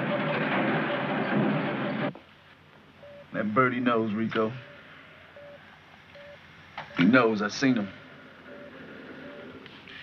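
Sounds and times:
film soundtrack hiss: 0:00.0 - 0:10.0.

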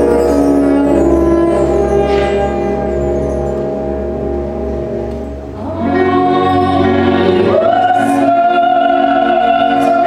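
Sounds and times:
symphony orchestra: 0:00.0 - 0:10.0
choir singing long notes: 0:05.5 - 0:10.0
woman singing with vibrato: 0:05.6 - 0:10.0.

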